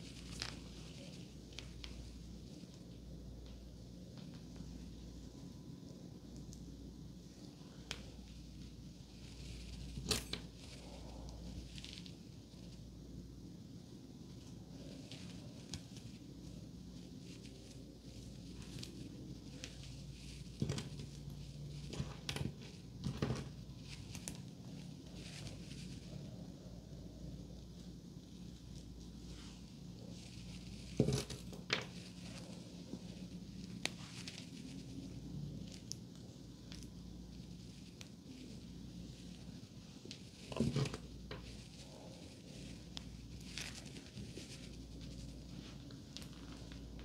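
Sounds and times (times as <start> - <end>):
hair rustling: 0.0 - 47.0
low room hum: 0.0 - 47.0.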